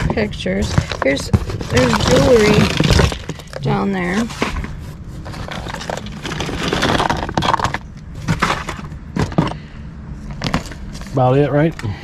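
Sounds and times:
rustling in cardboard box: 0.0s - 9.5s.

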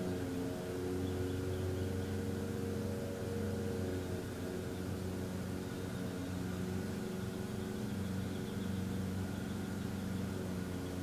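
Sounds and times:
low mechanical hum with hiss: 0.0s - 11.0s.

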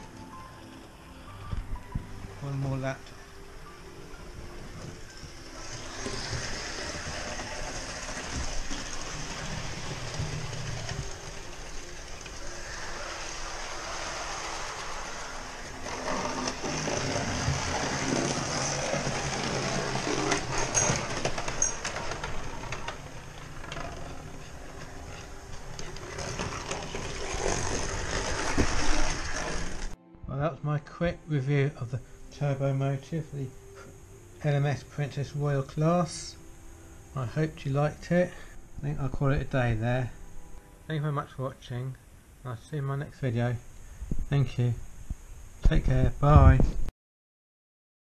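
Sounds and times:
wheels clicking over rail joints: 4.6s - 30.0s
model train motor whirring: 5.1s - 30.0s.

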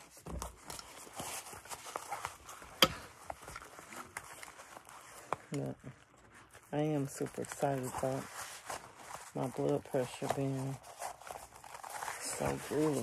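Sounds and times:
fabric rustling: 0.0s - 13.0s
person speaking: 5.5s - 6.0s, 6.7s - 8.4s, 9.3s - 10.9s, 12.1s - 13.0s.

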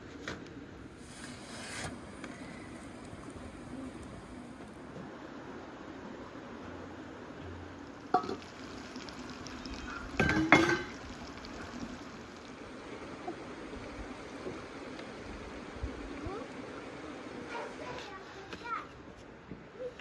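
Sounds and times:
food simmering hiss: 0.9s - 19.1s.

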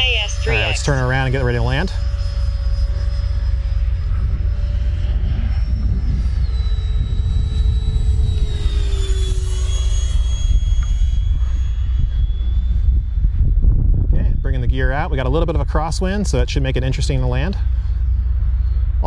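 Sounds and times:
electric ducted fan whine: 0.0s - 19.0s.

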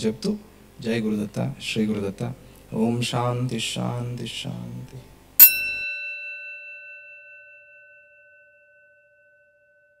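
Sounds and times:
struck bell chime ringing: 5.4s - 10.0s.

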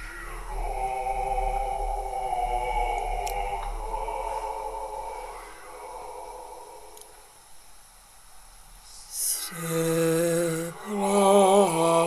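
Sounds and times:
low male voices chanting: 0.2s - 7.2s.

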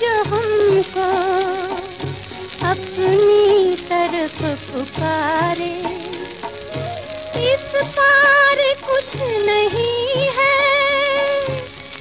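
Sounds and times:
woman singing: 0.0s - 11.8s
drum beat and accompaniment: 0.0s - 12.0s
even hiss: 0.0s - 12.0s.

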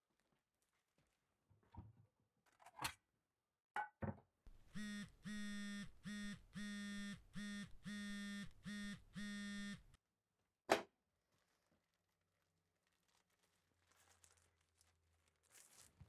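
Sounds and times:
phone vibrating buzz: 4.5s - 10.0s.

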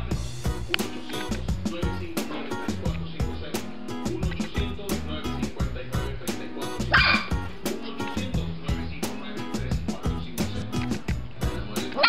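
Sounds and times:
background music with beat: 0.0s - 12.0s
puppy barking: 6.9s - 7.4s.

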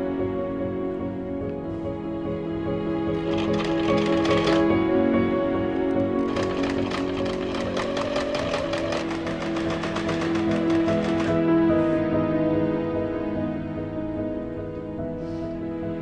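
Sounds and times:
soft background music: 0.0s - 16.0s
sewing machine stitching: 3.2s - 4.7s, 6.0s - 11.4s.

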